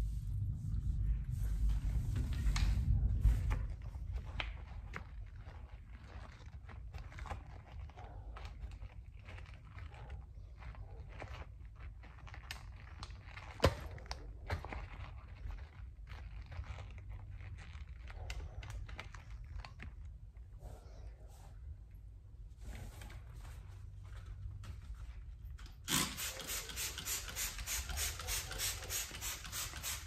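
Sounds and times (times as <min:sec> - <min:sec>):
quiet rustling: 0:00.0 - 0:25.7.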